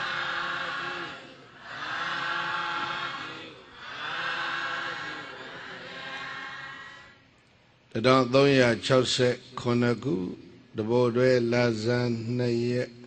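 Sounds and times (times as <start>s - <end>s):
congregation chanting in unison: 0.0s - 7.2s.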